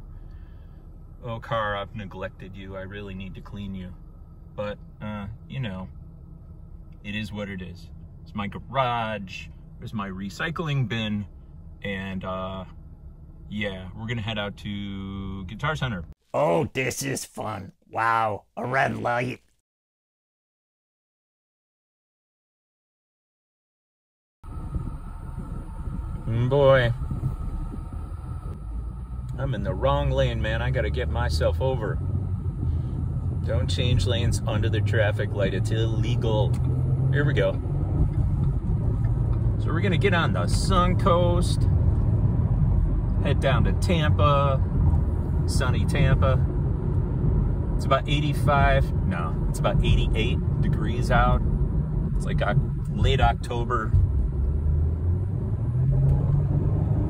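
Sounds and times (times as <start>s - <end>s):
car engine rumble inside cabin: 24.5s - 57.0s.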